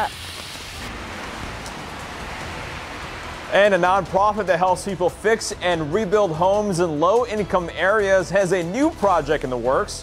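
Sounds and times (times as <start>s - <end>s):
steady rain falling: 0.0s - 5.0s.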